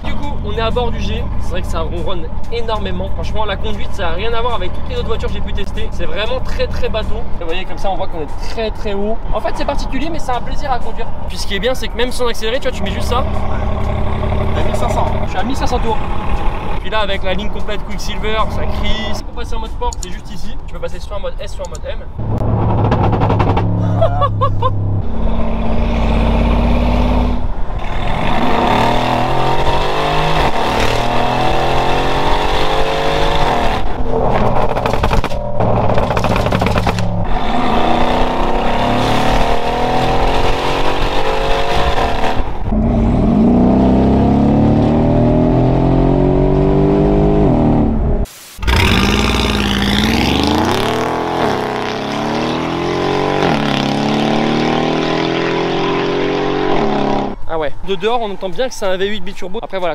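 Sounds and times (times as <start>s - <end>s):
car engine revving through gears: 12.8s - 16.8s, 22.2s - 23.8s, 24.7s - 57.4s
car engine passing by: 48.7s - 57.4s.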